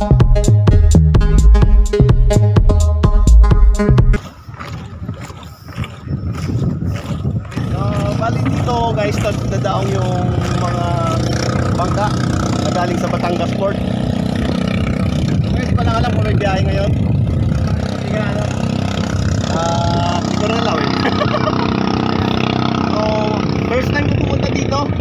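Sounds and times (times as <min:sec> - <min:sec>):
boat engine running: 0:00.0 - 0:25.0
people talking: 0:07.5 - 0:13.8, 0:15.4 - 0:17.0, 0:18.0 - 0:18.6, 0:19.5 - 0:21.6, 0:22.9 - 0:25.0.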